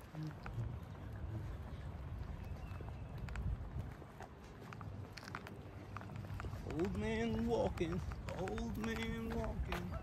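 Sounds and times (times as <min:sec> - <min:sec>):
footsteps on paved path: 0:00.0 - 0:10.0
wind rumble on microphone: 0:00.0 - 0:10.0.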